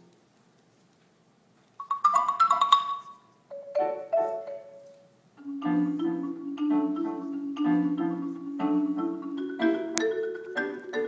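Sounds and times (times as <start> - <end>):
marimba and piano duet: 1.8 - 11.0
quick bright marimba notes: 5.4 - 11.0.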